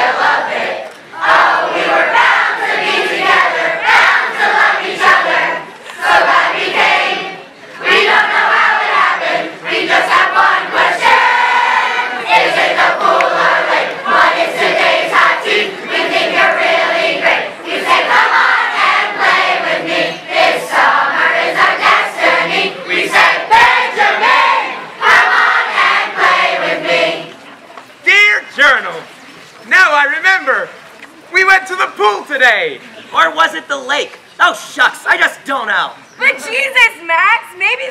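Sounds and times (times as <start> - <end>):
children singing together: 0.0 - 27.4.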